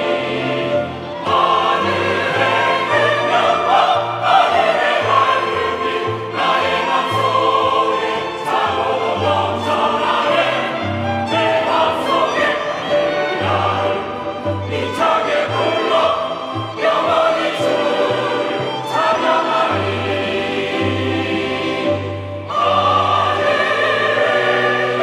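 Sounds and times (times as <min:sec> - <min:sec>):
choir singing a hymn: 0:00.0 - 0:25.0
instrumental accompaniment: 0:00.0 - 0:25.0.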